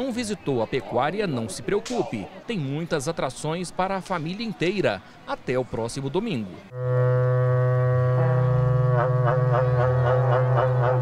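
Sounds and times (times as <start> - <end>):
cattle horn trumpet low note: 6.7 - 11.0.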